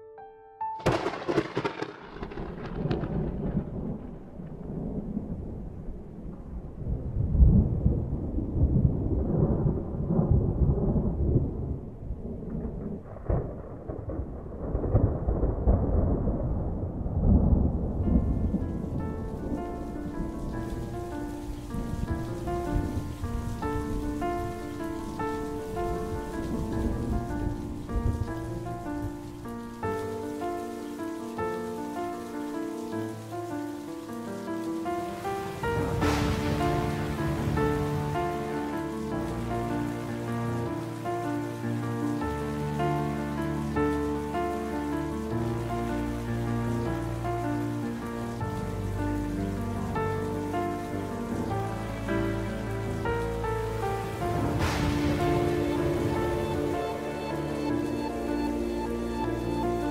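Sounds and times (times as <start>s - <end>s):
loud thunder crack: 0.8s - 30.0s, 34.9s - 43.2s, 52.2s - 59.9s
steady rain: 0.8s - 59.9s
music of slow held notes: 18.0s - 59.9s.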